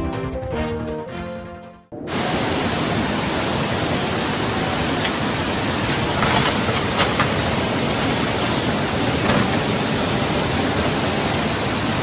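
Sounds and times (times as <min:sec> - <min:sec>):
floodwater rushing: 0:02.0 - 0:12.0.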